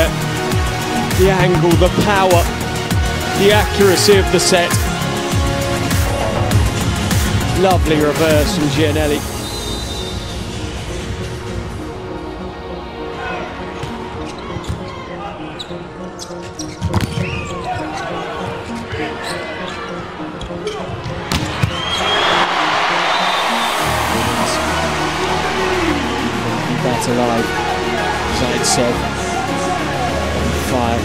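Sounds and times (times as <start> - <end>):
crowd noise: 5.0 - 31.0
crowd cheering: 21.3 - 30.6.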